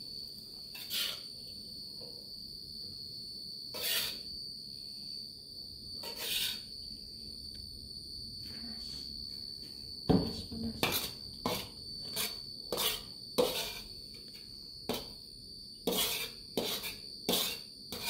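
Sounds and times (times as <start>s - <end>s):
high-pitched whine: 0.0s - 18.0s
spatula scraping a metal wok: 0.7s - 1.3s, 3.7s - 4.3s, 6.0s - 6.7s, 10.8s - 14.0s, 15.8s - 18.0s.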